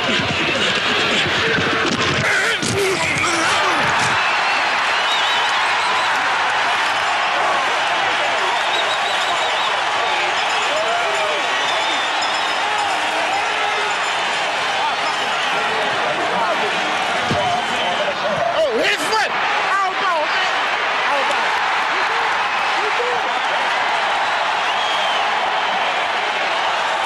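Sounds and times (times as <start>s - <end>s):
stadium crowd roar: 0.0s - 27.0s.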